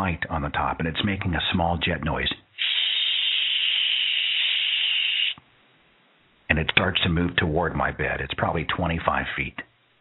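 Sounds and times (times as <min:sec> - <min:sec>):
man imitating jet engine hiss: 0:02.6 - 0:05.4.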